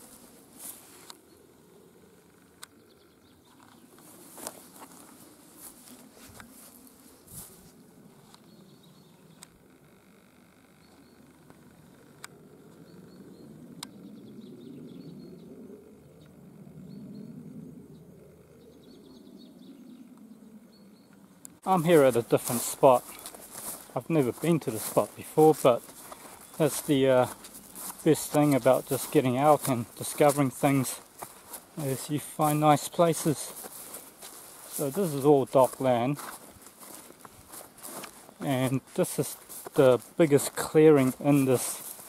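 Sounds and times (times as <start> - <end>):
rustling through long grass: 0.0 - 2.6, 3.4 - 12.9, 21.6 - 42.0.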